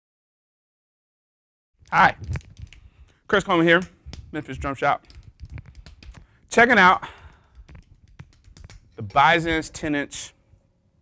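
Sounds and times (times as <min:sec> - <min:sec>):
low room noise: 0:01.8 - 0:11.0.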